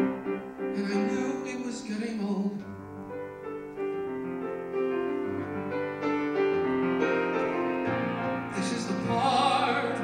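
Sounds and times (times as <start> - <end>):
piano playing held chords: 0.0 - 10.0.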